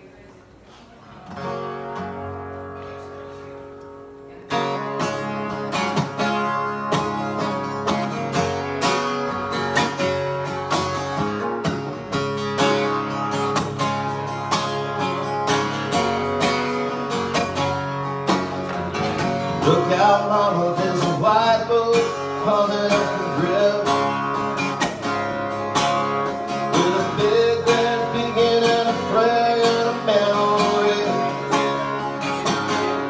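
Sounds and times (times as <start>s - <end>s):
acoustic guitar strumming: 1.2s - 33.0s.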